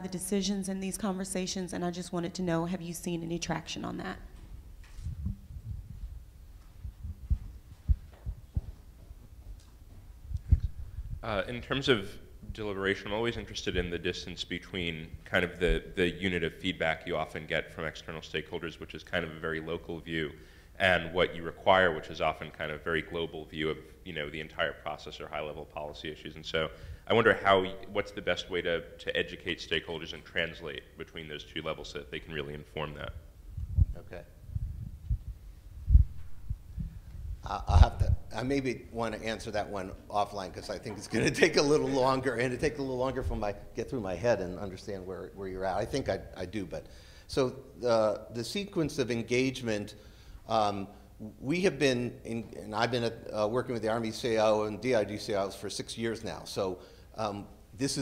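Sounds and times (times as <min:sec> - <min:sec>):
low hum: 0:04.2 - 0:13.1, 0:33.0 - 0:38.6
dull low thumps: 0:04.4 - 0:11.5, 0:33.1 - 0:38.4.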